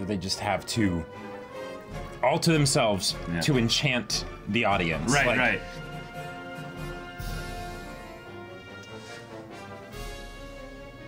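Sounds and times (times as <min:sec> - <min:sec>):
brass sustained chords: 0:00.8 - 0:11.0.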